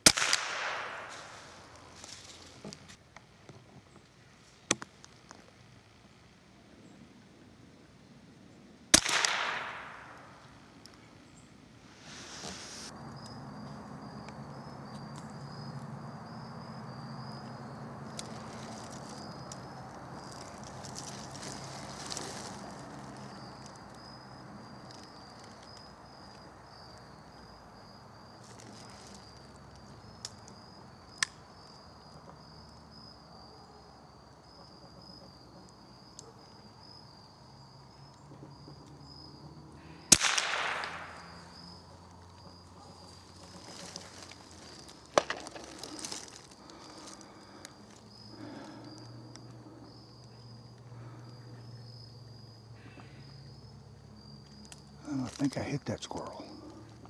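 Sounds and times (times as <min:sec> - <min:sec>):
rifle shot ringing through woods: 0:00.0 - 0:01.9, 0:08.9 - 0:10.6, 0:40.1 - 0:41.8
insects chorus: 0:00.0 - 0:57.0.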